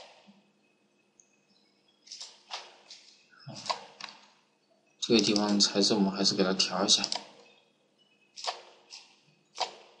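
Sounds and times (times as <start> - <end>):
computer mouse clicks: 2.1 - 4.3, 5.1 - 5.6, 7.0 - 7.5, 8.4 - 10.0.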